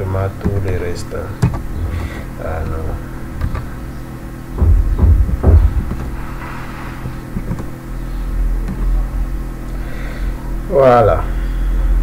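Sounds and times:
low electrical hum: 0.0 - 12.0
loud low thumps: 4.5 - 6.4.

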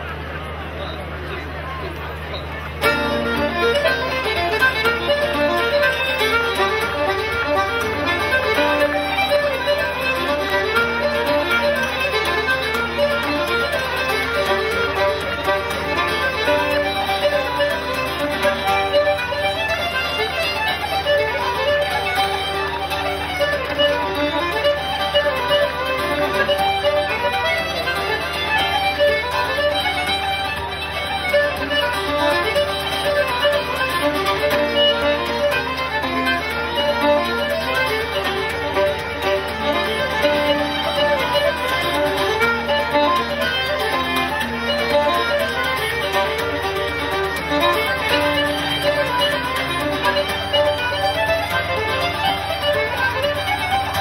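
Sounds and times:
button accordion: 0.0 - 54.0
fiddle: 0.0 - 54.0
strummed acoustic guitar: 2.3 - 54.0.

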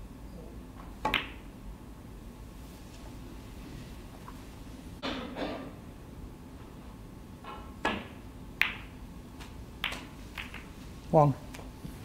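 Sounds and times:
snooker balls clicking: 0.8 - 1.5, 7.5 - 10.8.

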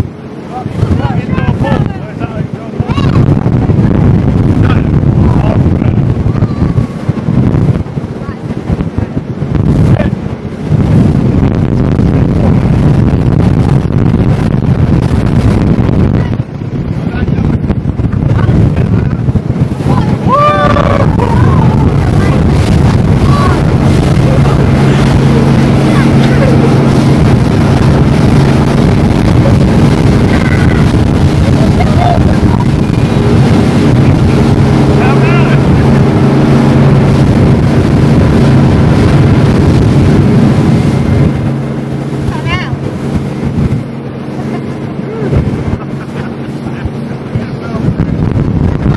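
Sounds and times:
speedboat rushing across sea: 0.0 - 48.9
wind buffeting microphone: 0.0 - 48.9
person calling out: 20.0 - 21.9.

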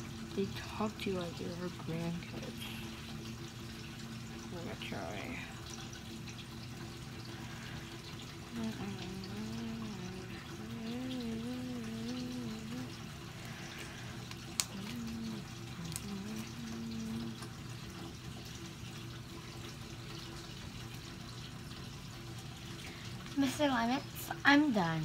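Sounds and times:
girl humming: 8.5 - 13.1, 14.6 - 17.4.

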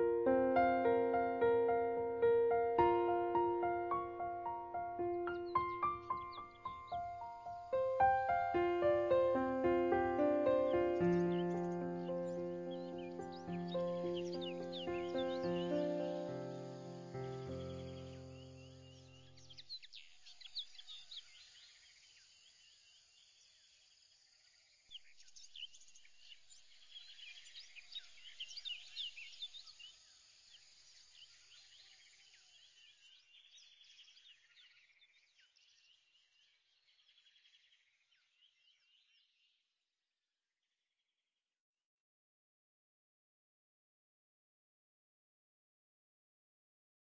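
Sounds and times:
music chord: 0.0 - 18.6
birds chirping: 0.0 - 21.6.

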